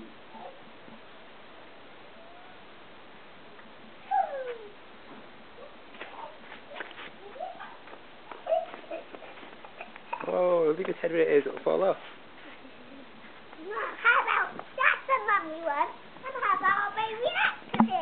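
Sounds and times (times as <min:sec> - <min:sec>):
faint hiss: 0:00.0 - 0:18.0
small child squealing: 0:04.0 - 0:04.8.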